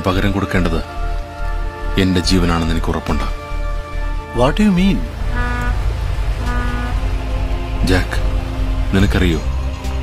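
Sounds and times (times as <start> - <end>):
steady low rumble: 4.9 - 9.7
short tones: 6.4 - 7.0.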